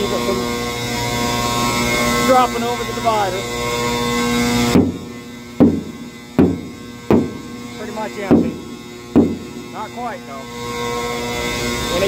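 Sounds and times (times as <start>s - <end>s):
knocks on steel shell ringing: 4.8s - 7.7s, 8.3s - 9.7s.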